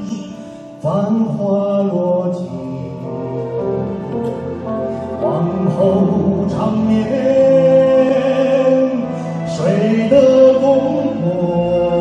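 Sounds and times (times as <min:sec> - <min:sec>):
man singing a slow ballad: 0:00.0 - 0:03.6, 0:05.1 - 0:12.0
instrumental accompaniment: 0:01.6 - 0:12.0.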